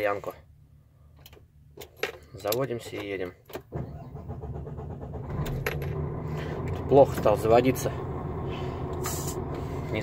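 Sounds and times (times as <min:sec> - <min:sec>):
diesel engine cranking: 0:03.6 - 0:10.0
diesel engine idling: 0:04.1 - 0:10.0.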